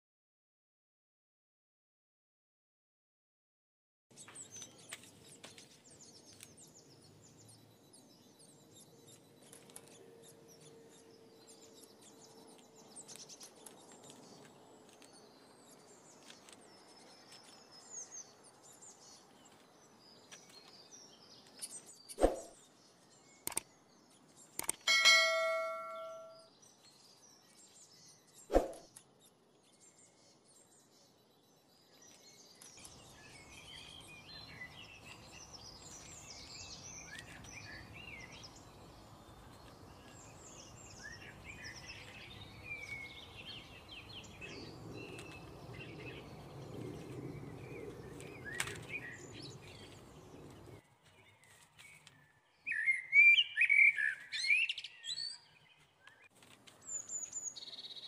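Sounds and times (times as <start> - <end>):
small birds chirping: 4.1 - 58.0
metallic clang ringing: 24.9 - 26.4.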